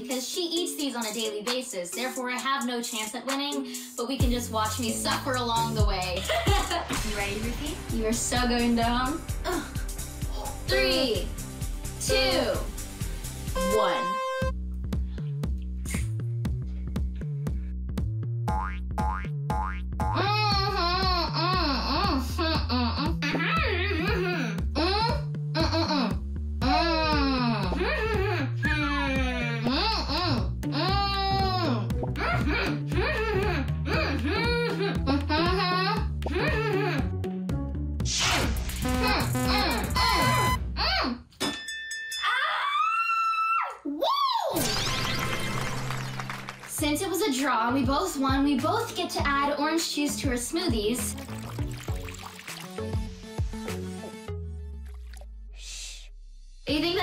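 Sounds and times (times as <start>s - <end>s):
playful background music: 0.0s - 41.4s, 44.6s - 55.7s
cartoon slide whistle: 13.6s - 14.5s, 39.5s - 40.6s.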